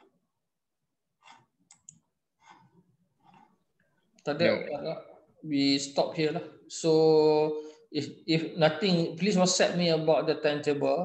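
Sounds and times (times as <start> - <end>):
man speaking: 4.3 - 11.0.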